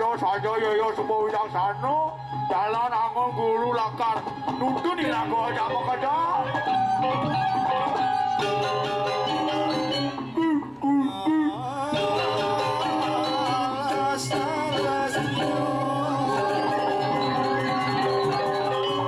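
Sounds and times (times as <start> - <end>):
metallophones: 6.4 - 10.9, 11.9 - 19.0
gongs: 7.0 - 10.5, 12.0 - 19.0.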